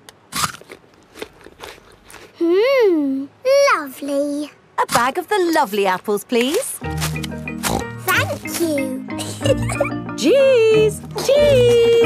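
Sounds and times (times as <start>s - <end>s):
crunching chews: 0.0s - 2.4s, 6.9s - 8.0s
crisp bite into an apple: 0.3s - 2.4s, 7.0s - 7.9s.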